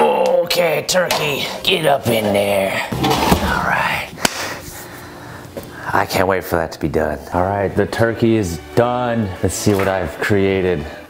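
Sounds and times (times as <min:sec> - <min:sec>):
faint steady hum: 0:00.9 - 0:07.4.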